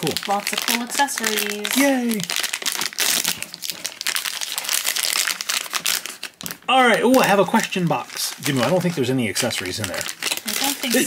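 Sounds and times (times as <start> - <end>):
foil bag crinkling: 0.0 - 11.0.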